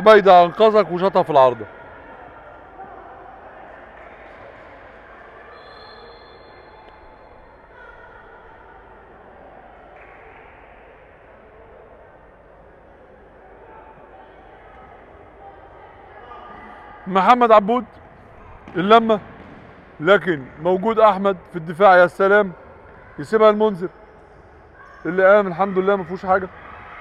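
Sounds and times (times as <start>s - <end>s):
distant voices in a hall: 0.0s - 27.0s
echoing hall noise: 0.0s - 27.0s.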